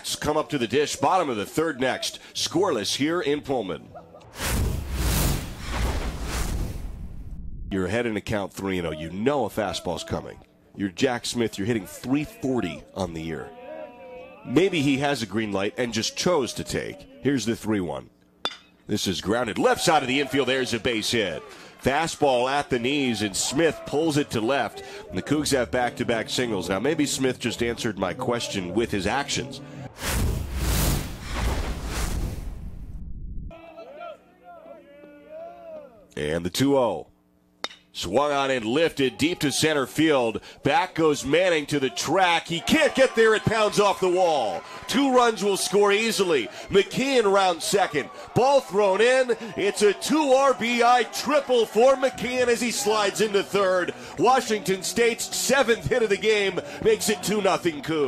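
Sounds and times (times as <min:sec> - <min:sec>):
faint ballpark ambience: 0:00.0 - 0:04.3, 0:07.7 - 0:30.0, 0:33.5 - 0:58.0
whooshing swells: 0:04.4 - 0:07.6
deep bass rumble: 0:06.8 - 0:07.7, 0:32.2 - 0:33.5.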